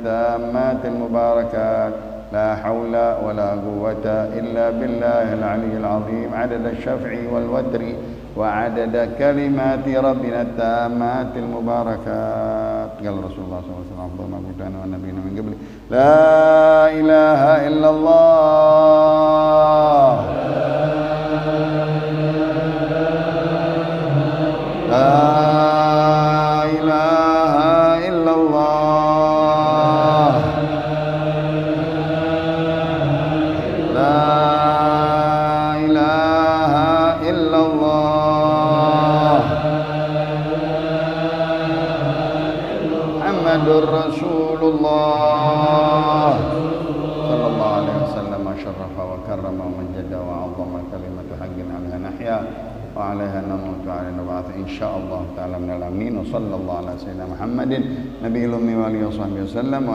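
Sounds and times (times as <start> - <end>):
men chanting: 0.0 - 13.5, 15.9 - 50.8.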